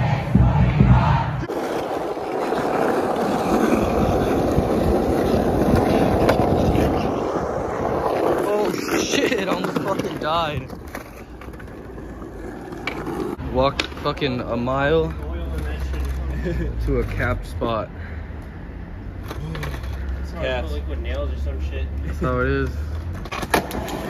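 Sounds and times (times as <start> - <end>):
people shouting: 0.0 - 1.5
crowd noise: 0.0 - 10.0
skateboard wheels rolling on asphalt: 1.4 - 17.5, 19.0 - 24.0
wind rumble on microphone: 3.7 - 8.4.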